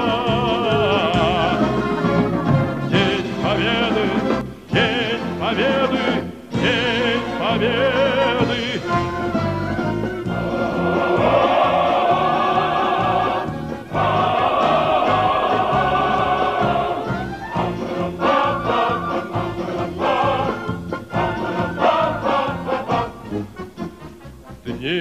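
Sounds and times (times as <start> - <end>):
male choir singing: 0.0 - 2.0, 2.9 - 9.3, 10.3 - 23.4
instrumental accompaniment: 0.0 - 25.0.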